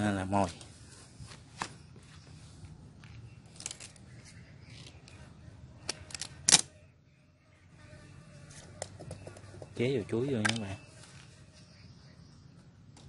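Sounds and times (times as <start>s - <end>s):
sharp clicks: 10.4s - 10.7s.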